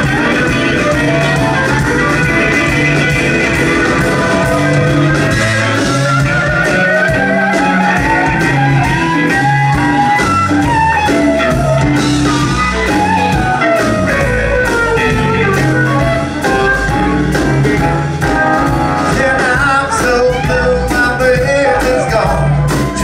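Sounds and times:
bass guitar: 0.0 - 23.0
drum kit beat: 0.0 - 23.0
electric guitars: 0.0 - 23.0
sliding bending lead guitar: 0.0 - 23.0.

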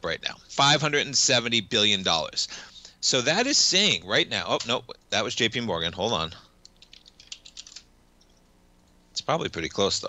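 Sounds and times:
computer keyboard typing: 6.6 - 7.9.

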